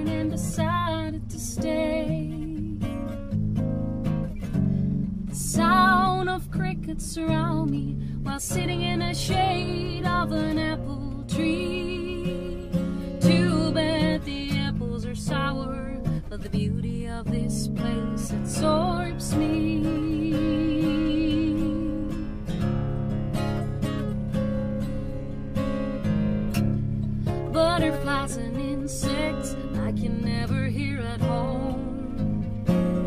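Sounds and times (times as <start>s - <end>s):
woman singing: 0.0s - 3.2s, 5.3s - 22.5s, 27.5s - 33.0s
acoustic guitar: 0.0s - 33.0s.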